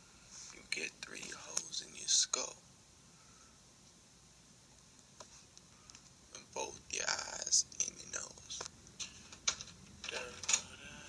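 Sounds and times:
whispered voice: 0.5s - 2.5s, 10.1s - 11.0s.

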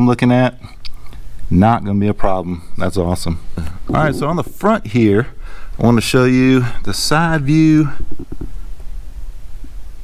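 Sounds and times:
microphone handling rumble: 3.4s - 6.4s, 7.9s - 8.7s.

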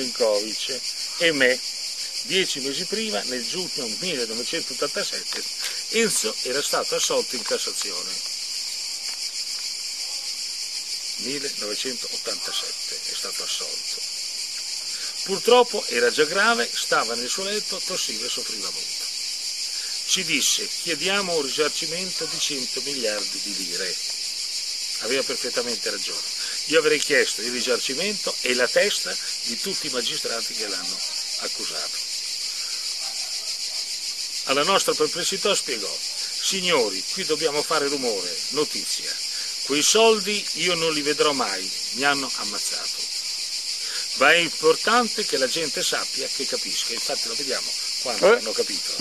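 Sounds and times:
insects chorus: 0.0s - 49.0s.

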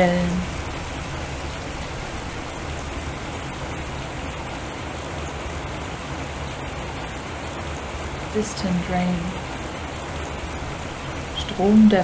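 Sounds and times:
low hum: 0.0s - 12.0s
rushing water: 0.0s - 12.0s.

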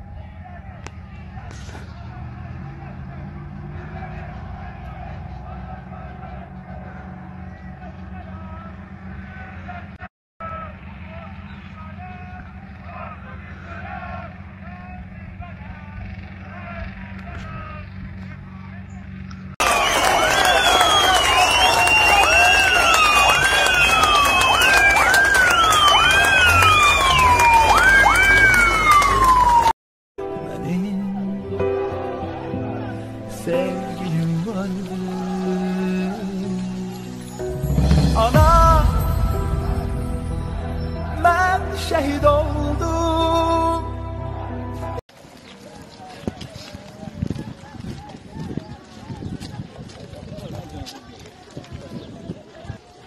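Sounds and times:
emergency vehicle sirens wailing: 0.0s - 18.6s, 19.6s - 29.8s, 30.7s - 45.0s
faint voices: 44.2s - 53.0s.

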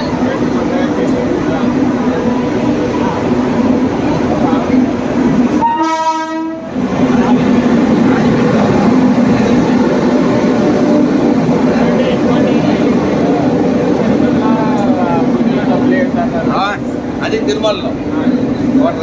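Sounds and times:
train rumbling past: 0.0s - 19.0s
train horn: 5.5s - 6.7s.

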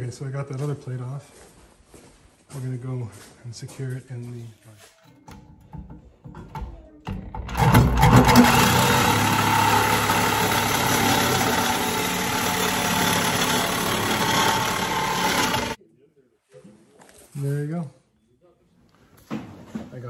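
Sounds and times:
reciprocating saw cutting metal: 7.9s - 15.8s.

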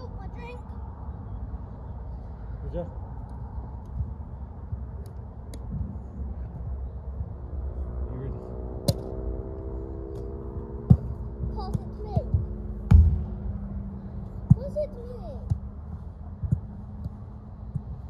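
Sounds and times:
steady low rumble: 0.0s - 18.0s
foot kicking football: 10.8s - 13.4s.

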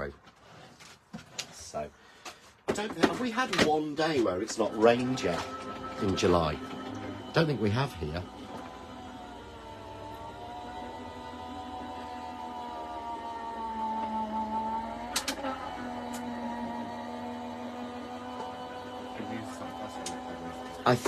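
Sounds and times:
die-cutting machine motor humming: 4.4s - 21.0s.

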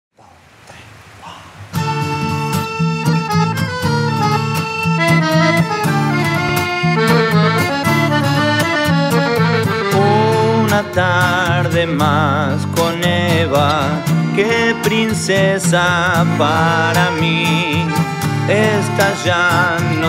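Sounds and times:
strummed acoustic guitar: 1.7s - 20.0s
accordion chords: 1.8s - 20.0s.

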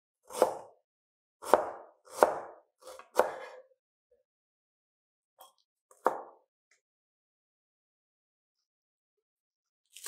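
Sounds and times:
cleaver chopping on cutting board: 0.2s - 0.8s, 1.4s - 3.6s, 6.0s - 6.4s.

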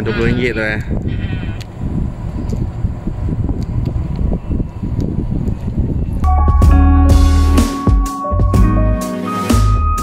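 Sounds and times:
wind and road noise: 0.0s - 7.3s.

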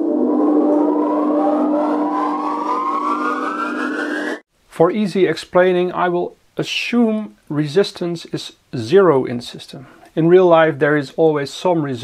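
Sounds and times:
low synth drone: 0.0s - 4.4s
tones gliding upward: 0.0s - 4.4s.

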